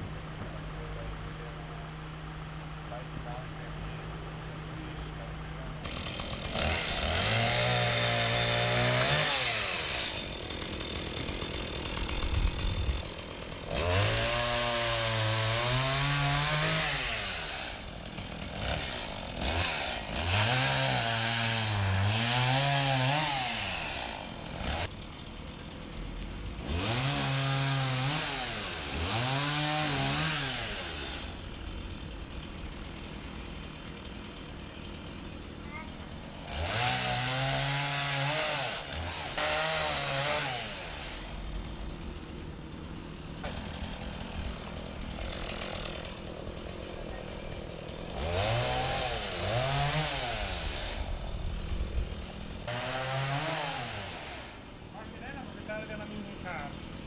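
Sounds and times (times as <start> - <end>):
chainsaw cutting wood: 5.2 - 57.0.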